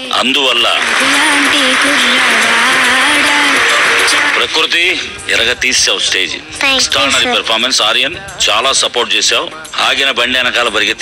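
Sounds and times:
audience applauding: 0.2 - 4.7.

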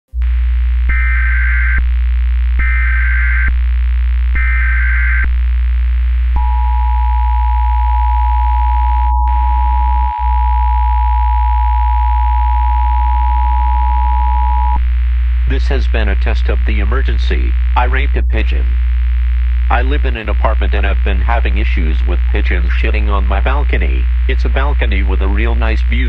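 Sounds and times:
low hum: 0.1 - 26.0
data tone bursts: 0.2 - 1.9, 2.5 - 3.6, 4.3 - 5.3, 6.4 - 14.9
two-tone attention signal: 6.4 - 14.8.

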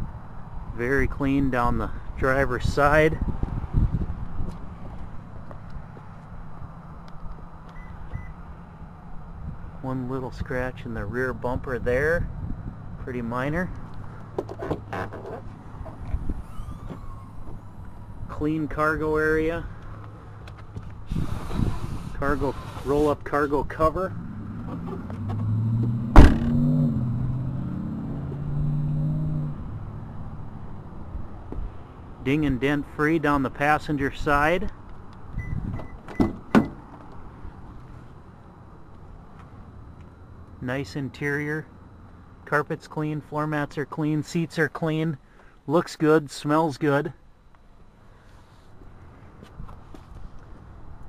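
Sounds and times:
wind on microphone: 2.5 - 5.2, 21.0 - 22.7, 35.3 - 36.0
microphone handling noise: 20.0 - 22.9.

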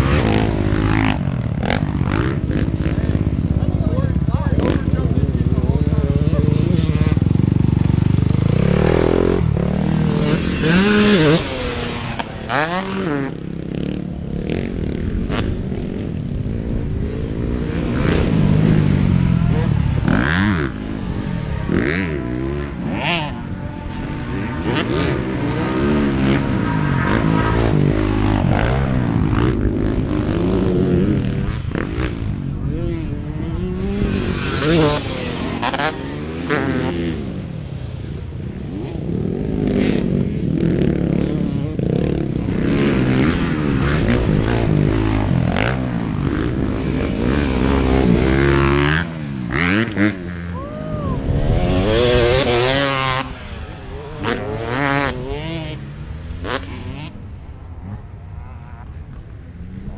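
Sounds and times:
dirt bike engines revving: 0.0 - 59.9.

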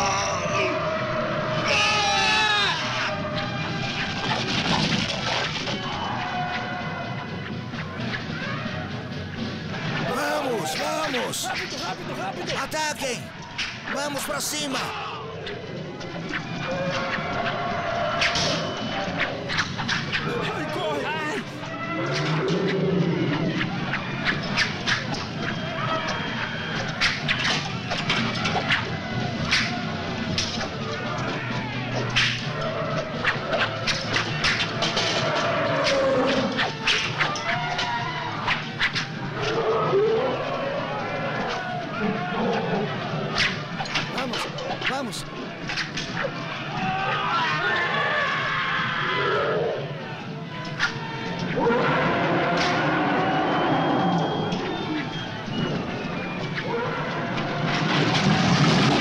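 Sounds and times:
men shouting and screaming: 0.0 - 3.5, 9.8 - 15.4, 20.1 - 21.7, 44.1 - 45.3
background music: 0.0 - 59.0.

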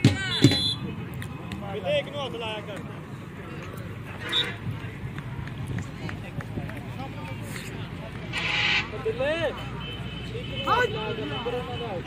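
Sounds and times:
indistinct voices outdoors: 0.0 - 12.0.

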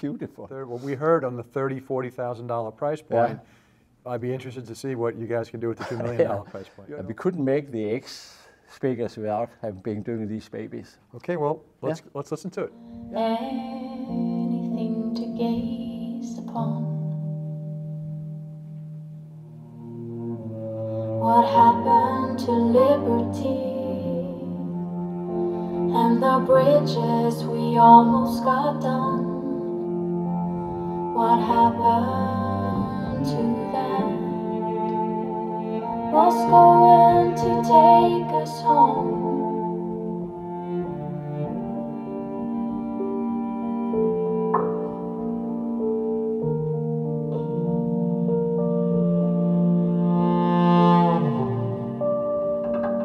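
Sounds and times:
bowed cello-like notes: 12.6 - 53.0
held low chord: 12.7 - 53.0
recorded song over loudspeakers: 21.2 - 24.8, 25.8 - 40.4.

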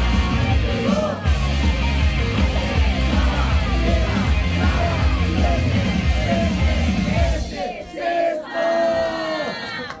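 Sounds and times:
backing track music: 0.0 - 7.6
crowd shouting long calls: 2.6 - 10.0.

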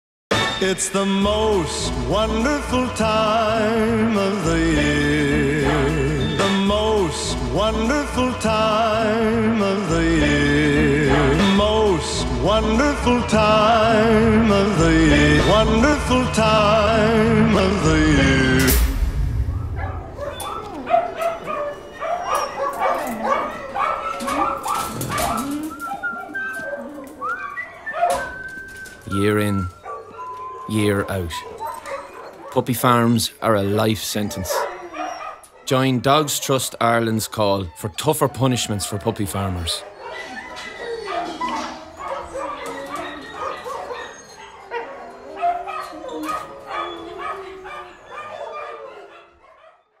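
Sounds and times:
dog whining: 19.6 - 32.6, 34.2 - 35.7, 37.3 - 49.6
dogs whimpering and yelping: 19.6 - 32.6, 34.2 - 35.7, 37.0 - 49.8.

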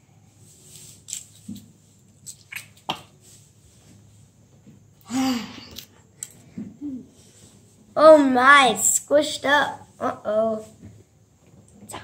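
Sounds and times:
girl humming softly: 6.8 - 7.2.

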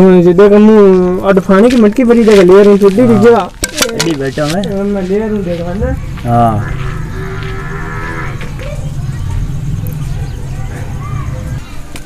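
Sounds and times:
cattle lowing: 6.5 - 8.6.

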